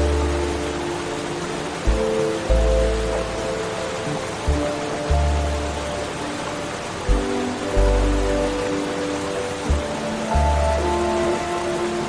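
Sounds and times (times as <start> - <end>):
hiss of falling water: 0.0 - 12.0
slow soft piano music: 0.0 - 12.0
deep bass notes: 7.1 - 8.6.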